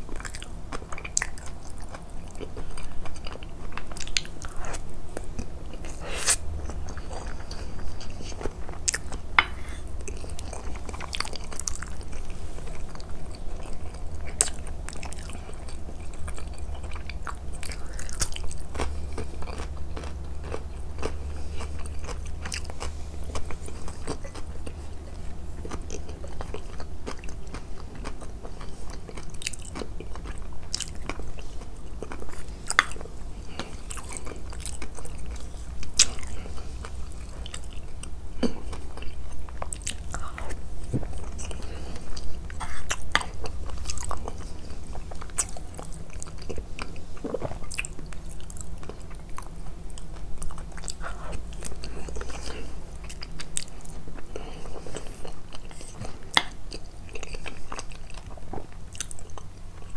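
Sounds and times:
chewing and crunching food: 0.0 - 59.9
low steady hum: 0.0 - 59.9.

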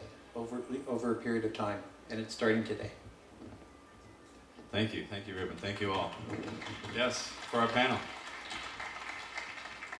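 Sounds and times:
audience clapping: 5.2 - 10.0.

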